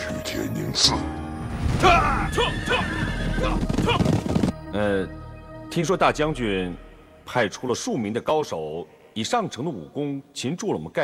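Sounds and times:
horse neighing: 0:01.8 - 0:04.2
horses galloping hoofbeats: 0:02.5 - 0:04.5.

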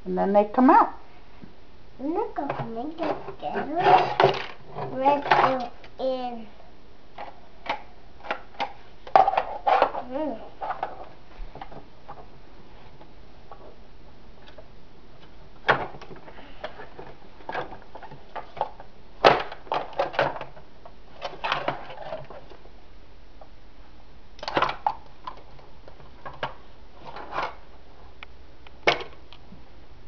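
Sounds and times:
plastic parts knocking on table: 0:02.5 - 0:05.7.

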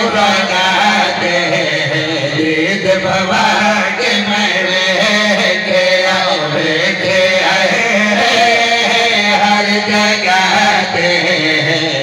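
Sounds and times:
men chanting into microphones: 0:00.0 - 0:12.0.

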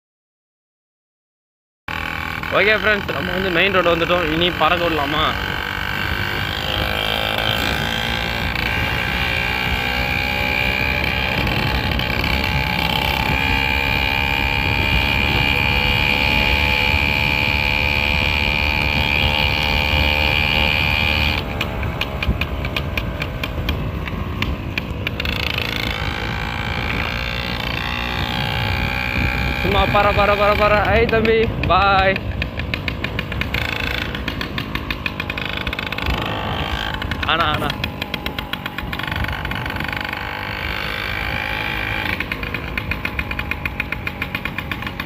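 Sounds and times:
small engine running: 0:01.9 - 0:45.0.

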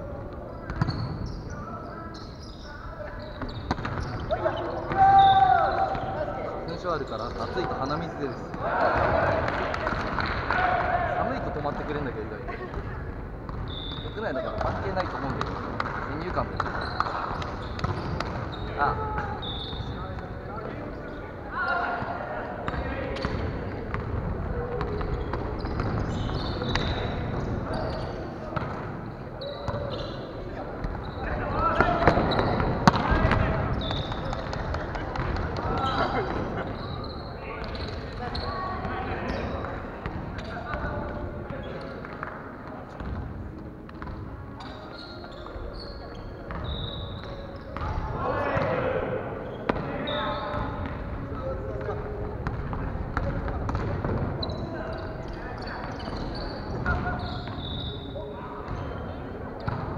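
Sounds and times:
sports shoes squeaking: 0:00.2 - 0:09.4, 0:11.3 - 0:59.9.

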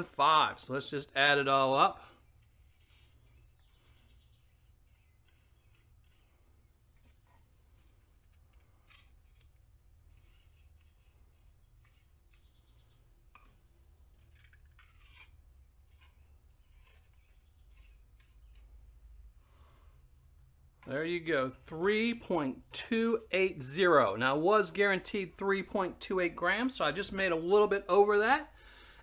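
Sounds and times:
small brush sweeping flakes: 0:02.3 - 0:12.6, 0:14.1 - 0:19.0.

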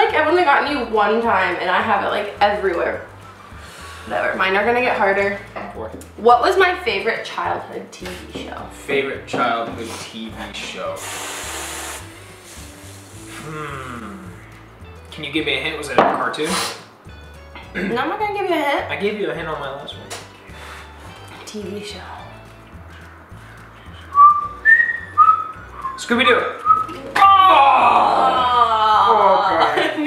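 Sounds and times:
aerosol can spraying whipped cream: 0:10.9 - 0:13.5, 0:16.4 - 0:16.9
woman whistling held notes: 0:24.1 - 0:26.0, 0:26.6 - 0:27.0.

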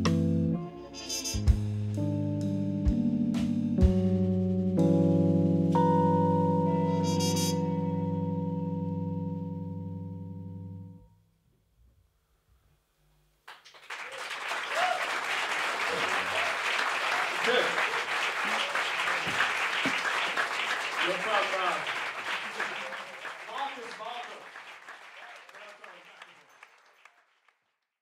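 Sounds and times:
audience applauding: 0:13.5 - 0:27.8
shouts and cheers: 0:14.1 - 0:15.2, 0:15.9 - 0:17.7.

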